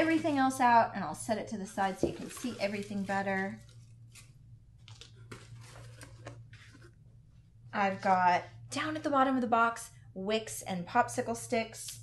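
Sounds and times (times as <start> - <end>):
cardboard rustling and scraping: 1.9 - 7.0.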